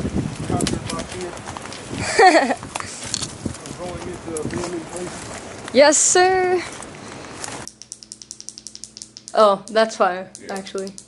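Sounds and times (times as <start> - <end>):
outdoor background noise: 0.0 - 11.0
low steady hum: 1.7 - 11.0
rapid light clicks: 7.4 - 11.0.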